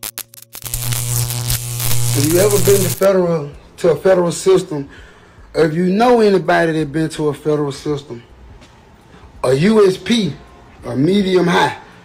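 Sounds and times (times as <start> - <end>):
low electronic hum: 0.0 - 3.1
static hiss: 0.0 - 3.1
stuttering electronic clicks: 0.0 - 3.1.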